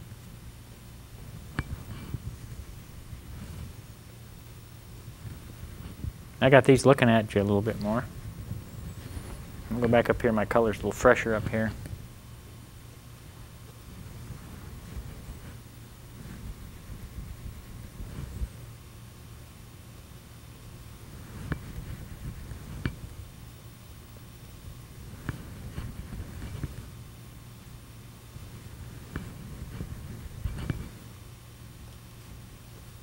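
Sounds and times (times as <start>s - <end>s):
low hum: 0.0s - 33.0s.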